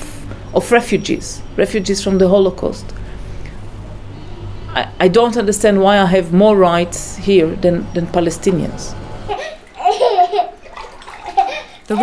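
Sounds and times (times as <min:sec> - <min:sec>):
water pouring and splashing: 0:09.6 - 0:12.0.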